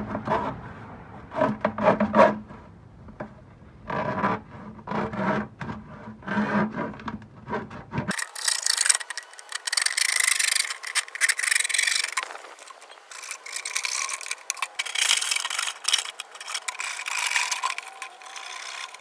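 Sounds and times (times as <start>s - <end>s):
hacksaw cutting plastic: 1.3s - 2.6s, 3.2s - 19.0s.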